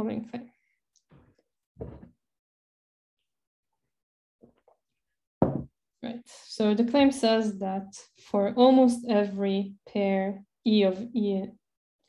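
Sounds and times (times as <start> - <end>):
short knock: 5.4 - 5.7.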